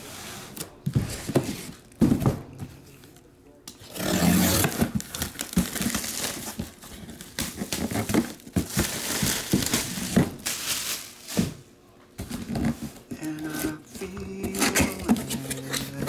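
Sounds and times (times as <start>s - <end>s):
plastic shrink-wrap tearing: 4.4s - 6.6s.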